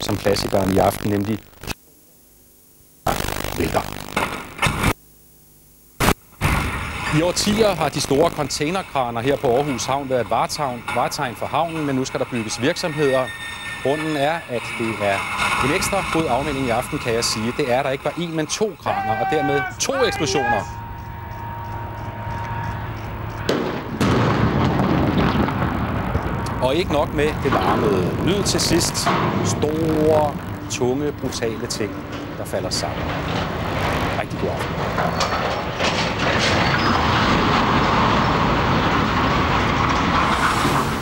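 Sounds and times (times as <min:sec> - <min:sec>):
continuing heavy noise: 0:06.4 - 0:35.2
crashing rumble of falling steel: 0:06.4 - 0:41.0
explosive demolition blasts: 0:06.4 - 0:41.0.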